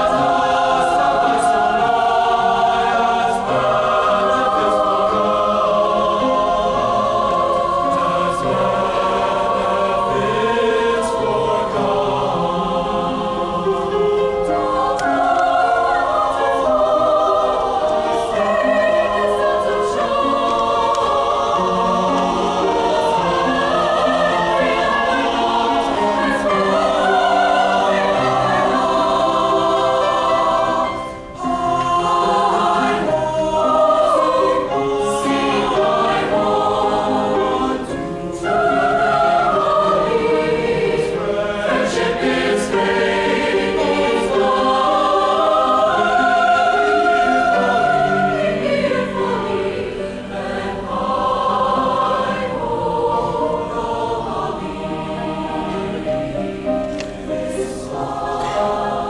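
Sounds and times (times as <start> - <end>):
choir singing in harmony: 0.0 - 59.0.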